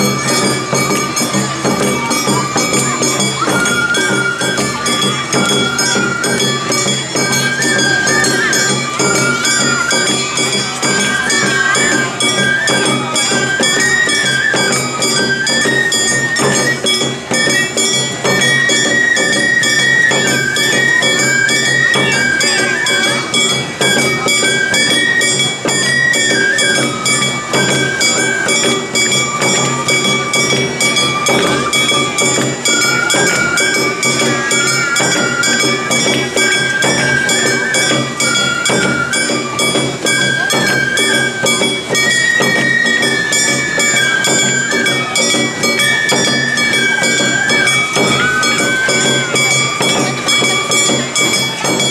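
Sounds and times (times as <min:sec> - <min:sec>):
bamboo flute melody: 0:00.0 - 0:51.9
drums beating: 0:00.0 - 0:51.9.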